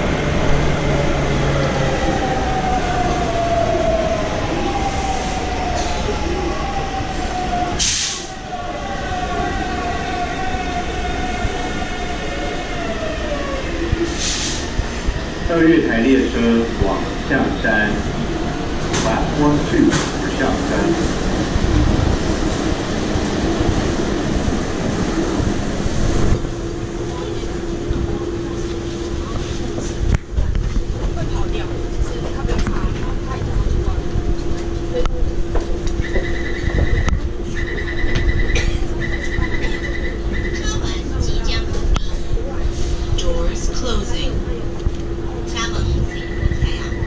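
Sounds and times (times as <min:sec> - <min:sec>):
low hum from train car: 0:00.0 - 0:47.0
train and platform noise: 0:00.0 - 0:47.0.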